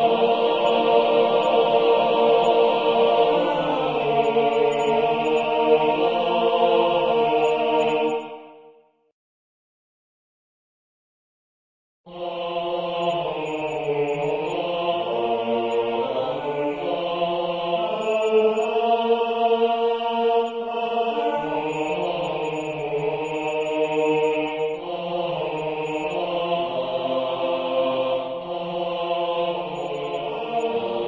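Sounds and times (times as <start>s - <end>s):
choir singing ah chords: 0.0s - 8.8s, 12.1s - 31.0s.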